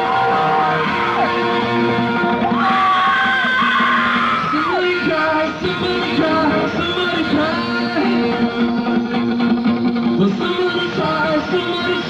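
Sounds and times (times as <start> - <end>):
electric guitar: 0.0 - 12.0
rock band playing: 0.0 - 12.0.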